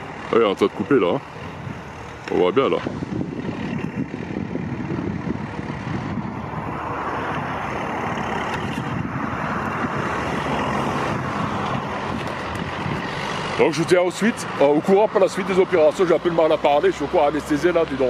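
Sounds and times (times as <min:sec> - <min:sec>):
diesel engine running: 0:00.0 - 0:18.0
road traffic noise: 0:00.0 - 0:18.0.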